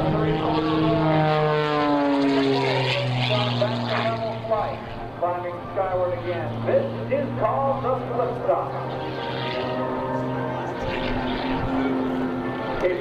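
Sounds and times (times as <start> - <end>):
man talking: 0.0 - 1.2, 2.2 - 8.9, 12.8 - 13.0
propeller engine droning: 0.0 - 13.0.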